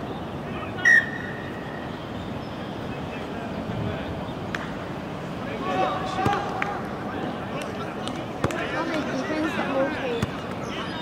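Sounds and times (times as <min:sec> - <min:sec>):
players calling and talking: 0:00.0 - 0:11.0.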